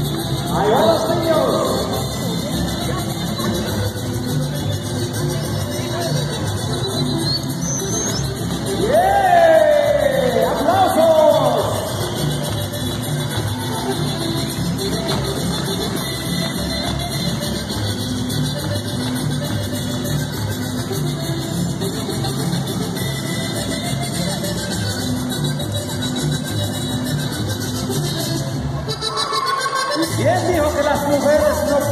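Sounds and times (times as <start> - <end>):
polka music: 0.0 - 31.9
loud gliding yells: 29.0 - 30.0.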